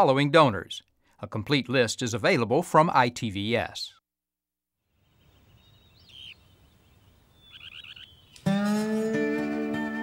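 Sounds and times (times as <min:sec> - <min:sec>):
bird chirping: 0:04.9 - 0:08.5
faint outdoor ambience: 0:04.9 - 0:08.6.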